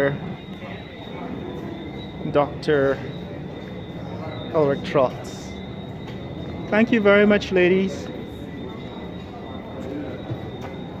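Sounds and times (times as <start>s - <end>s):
faint distant voices: 0.0s - 11.0s
high-pitched whine: 0.0s - 11.0s.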